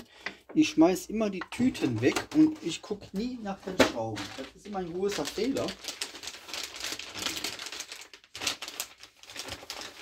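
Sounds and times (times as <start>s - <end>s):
plastic bags crinkling: 1.5s - 10.0s.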